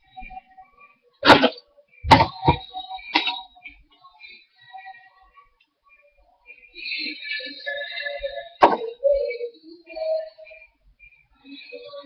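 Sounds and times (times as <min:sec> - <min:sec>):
faint steady background tones: 0:00.0 - 0:12.0.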